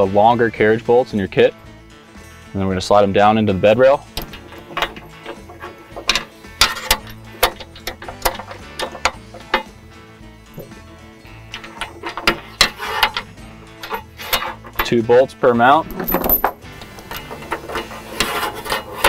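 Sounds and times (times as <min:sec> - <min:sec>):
background music: 0:00.0 - 0:19.0
metal bolts clicking: 0:04.0 - 0:09.8, 0:10.5 - 0:10.8, 0:11.4 - 0:15.1, 0:15.7 - 0:19.0.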